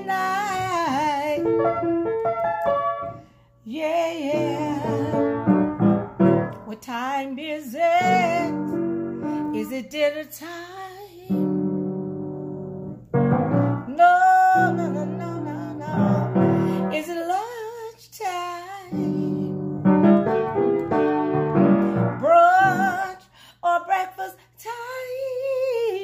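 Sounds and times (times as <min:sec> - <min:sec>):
woman singing: 0:00.0 - 0:01.9, 0:03.6 - 0:11.8, 0:13.8 - 0:19.8, 0:21.9 - 0:26.0
piano chords: 0:00.0 - 0:06.8, 0:07.8 - 0:09.7, 0:11.3 - 0:17.2, 0:18.9 - 0:23.2.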